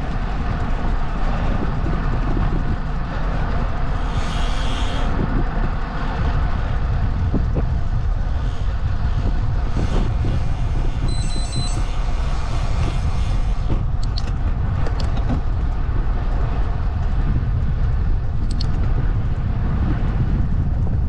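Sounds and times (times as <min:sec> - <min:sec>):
bicycle tyres on road: 0:00.0 - 0:21.0
wind buffeting microphone: 0:00.0 - 0:21.0
high electronic beeps: 0:11.1 - 0:11.8.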